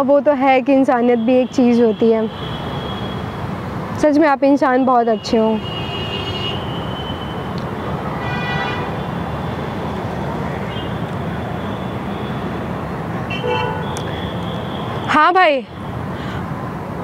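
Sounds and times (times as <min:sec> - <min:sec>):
outdoor traffic rumble: 0:00.0 - 0:17.0.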